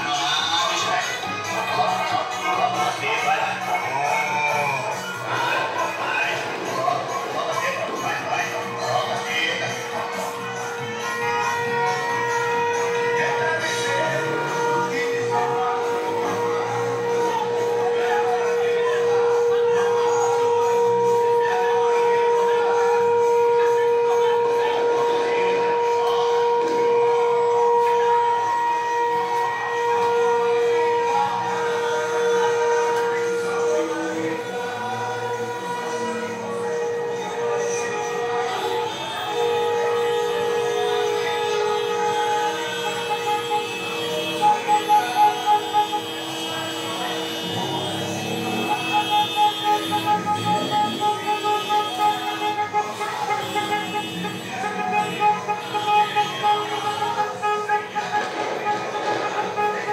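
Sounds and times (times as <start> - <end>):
music: 0.0 - 59.9
voices: 0.0 - 59.9
car horn blast: 9.8 - 59.9
short horn toots: 25.7 - 59.9.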